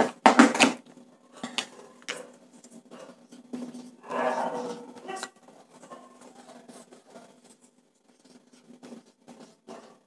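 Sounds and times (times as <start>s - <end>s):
marker scraping on whiteboard: 3.0s - 10.0s.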